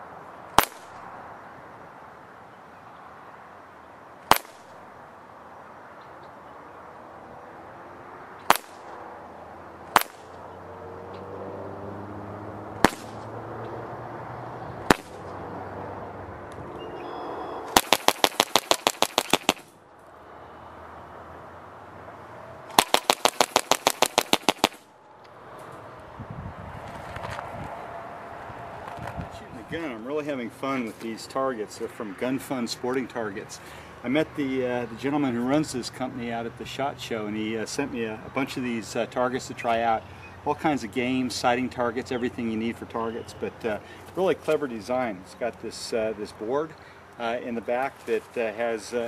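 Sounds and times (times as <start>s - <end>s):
air rifle single shots: 0.5s - 1.0s, 4.2s - 4.8s, 8.4s - 9.0s, 9.9s - 10.4s, 12.8s - 13.3s, 14.8s - 15.4s, 17.7s - 19.8s, 22.7s - 24.9s
air rifle full-auto bursts: 17.8s - 19.7s, 22.8s - 24.8s.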